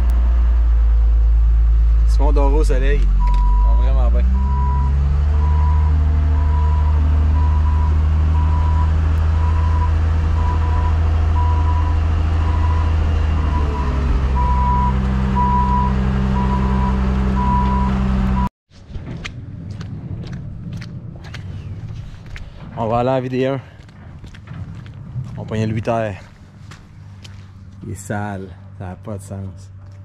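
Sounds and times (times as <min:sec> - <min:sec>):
vehicle engine running: 0:00.0 - 0:18.5
reversing alarm beeping: 0:03.2 - 0:18.5.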